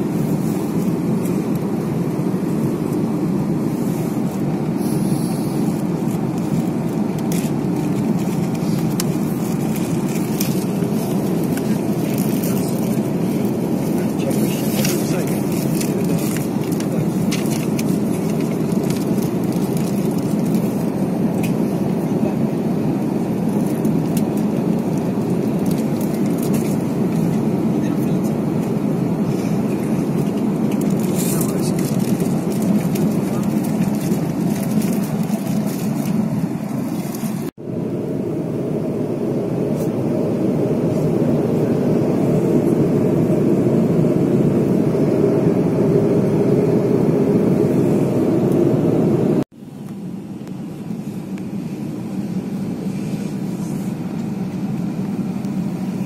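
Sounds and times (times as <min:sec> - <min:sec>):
airliner cabin engine rush: 0:00.0 - 0:56.0.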